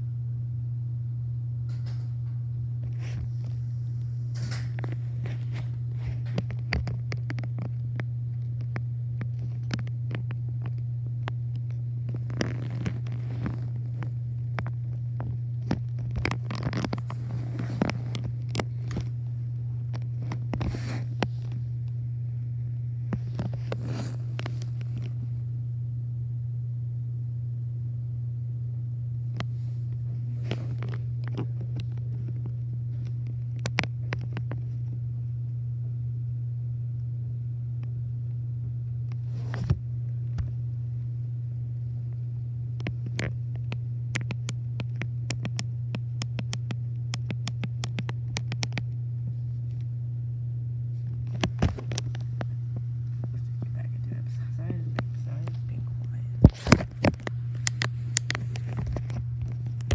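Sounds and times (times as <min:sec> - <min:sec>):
steady low hum: 0:00.0 - 0:59.9
light clicks and scrapes: 0:15.6 - 0:19.2.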